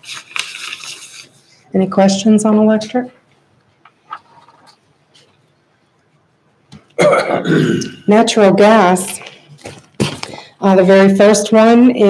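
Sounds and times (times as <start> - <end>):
person coughing: 7.0 - 8.1.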